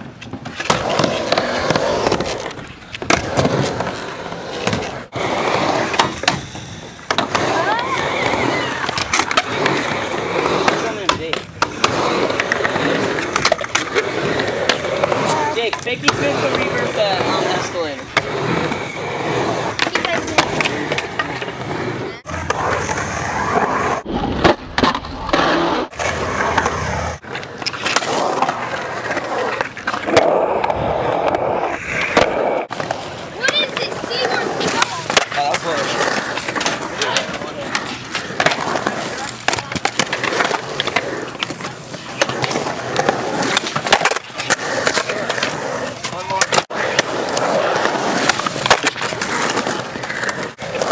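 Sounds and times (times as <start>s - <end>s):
skateboard clacking: 0.0s - 50.9s
skateboard wheels rolling on concrete: 0.0s - 50.9s
skateboard clacks and knocks: 19.6s - 22.6s, 32.0s - 50.9s.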